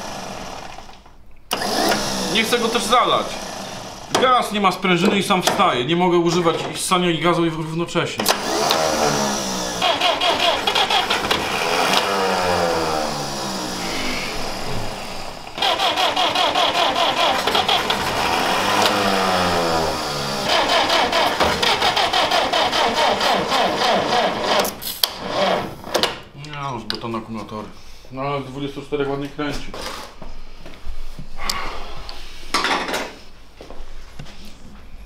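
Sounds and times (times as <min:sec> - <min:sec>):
starter motor cranking engine: 0:00.0 - 0:04.4, 0:08.2 - 0:25.8.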